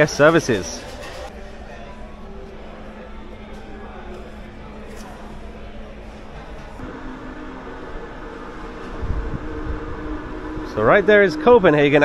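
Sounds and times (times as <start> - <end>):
mechanical hum with held tones: 1.7 - 12.0
low rumble: 6.8 - 12.0.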